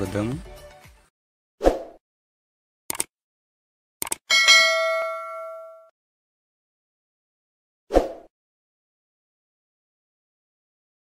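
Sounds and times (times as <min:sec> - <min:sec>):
notification bell ding: 0:04.3 - 0:05.9.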